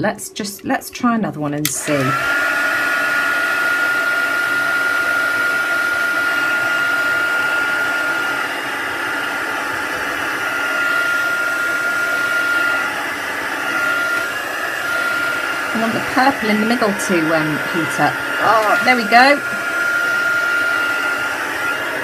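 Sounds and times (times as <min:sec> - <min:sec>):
heat tool fan whining: 0:01.7 - 0:22.0.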